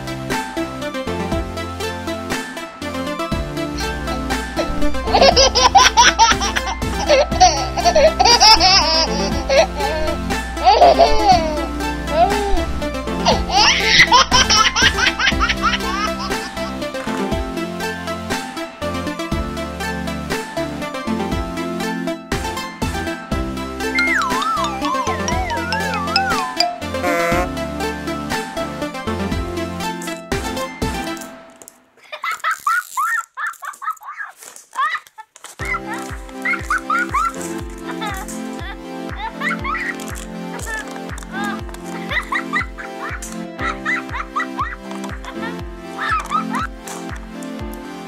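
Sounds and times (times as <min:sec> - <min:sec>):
background music: 0:00.0 - 0:31.7, 0:35.6 - 0:48.0
steady music beat: 0:03.6 - 0:16.8, 0:24.0 - 0:27.7
small child laughing: 0:03.8 - 0:16.7, 0:32.0 - 0:40.0, 0:40.7 - 0:47.1.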